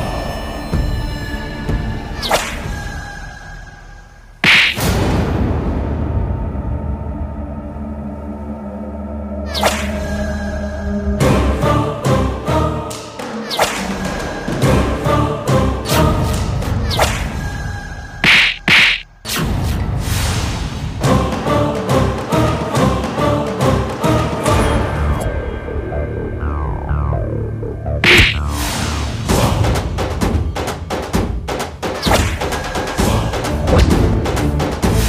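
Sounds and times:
sharp swish: 4.4 - 4.9, 9.6 - 9.9, 18.2 - 19.4, 28.0 - 28.5
dramatic background music: 4.4 - 18.1, 19.2 - 35.0.

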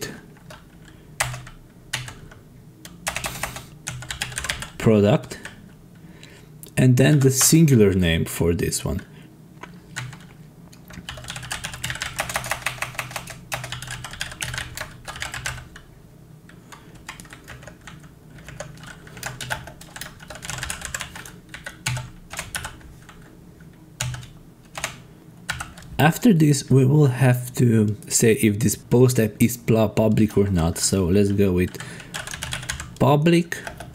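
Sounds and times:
typing on computer keyboard: 0.4 - 2.4, 3.0 - 5.6, 9.9 - 15.8, 16.7 - 23.2, 24.0 - 25.9, 31.7 - 33.0, 33.6 - 33.9.

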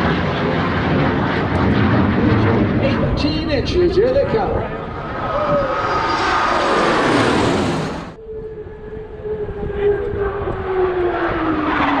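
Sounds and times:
jet engine rush: 0.0 - 12.0
plane engine whine: 0.0 - 12.0.

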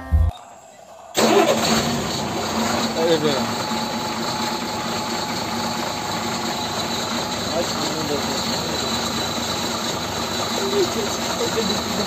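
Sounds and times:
engine-like running hum: 1.1 - 12.0.

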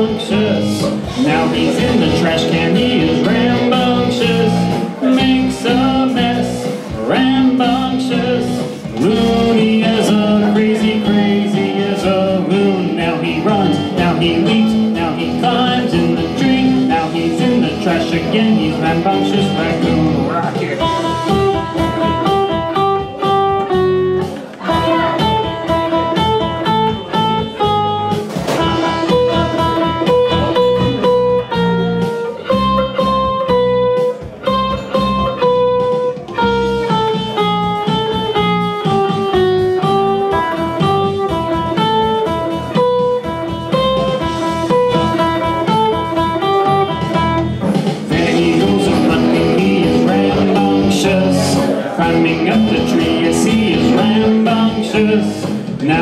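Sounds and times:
backing track with steady beat: 0.0 - 56.0
electric guitar melody: 0.0 - 56.0.

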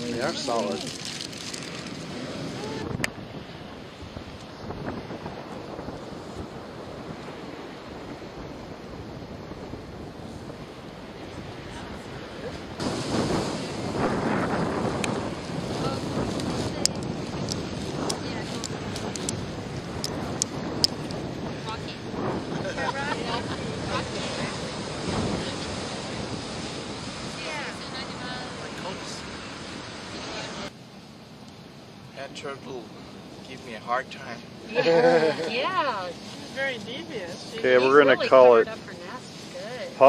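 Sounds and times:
wind buffeting microphone: 0.0 - 30.7
ocean surf: 0.0 - 40.0.

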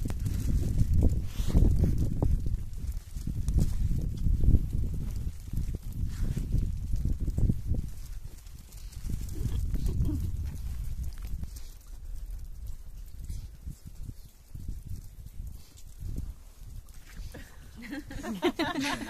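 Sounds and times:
low wind rumble on microphone: 0.0 - 19.0.

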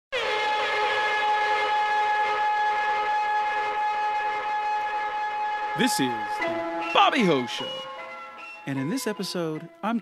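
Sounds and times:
held electronic note: 0.2 - 10.0.

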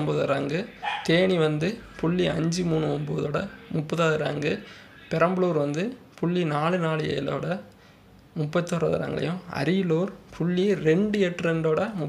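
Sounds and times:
man talking: 0.0 - 7.7, 8.4 - 12.0.

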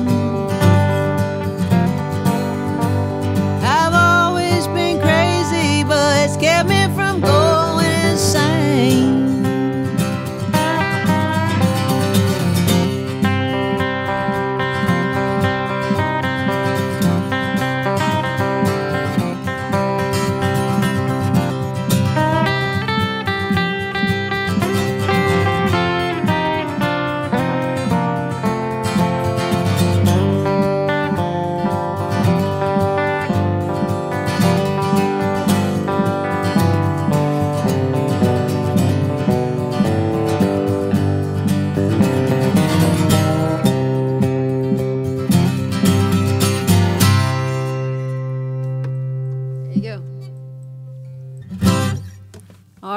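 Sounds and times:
acoustic guitar strumming: 0.0 - 52.9
electric guitar lead lines: 0.0 - 52.9.

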